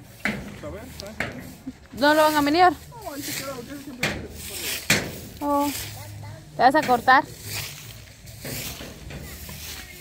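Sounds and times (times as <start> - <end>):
quiet indistinct talking: 0.6 - 10.0.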